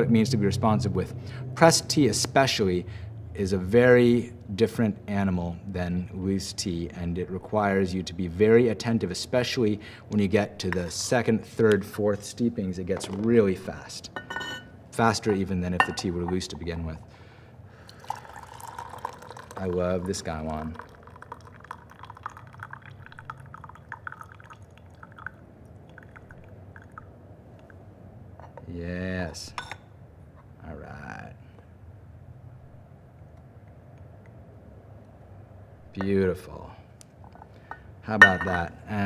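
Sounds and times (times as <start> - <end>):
low room hum: 0.0 - 39.0
liquid trickling into glass: 17.8 - 27.7, 37.6 - 38.7
tea dripping into glass: 17.8 - 27.8.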